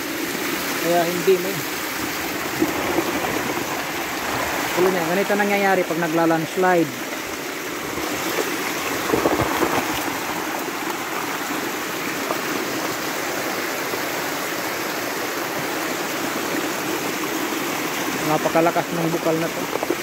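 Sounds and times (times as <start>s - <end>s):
water rushing over stones: 0.0s - 20.0s.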